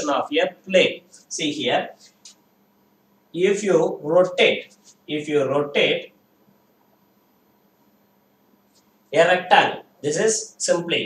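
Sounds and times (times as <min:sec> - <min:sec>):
man speaking: 0:00.0 - 0:02.1, 0:03.4 - 0:06.1, 0:09.2 - 0:11.0.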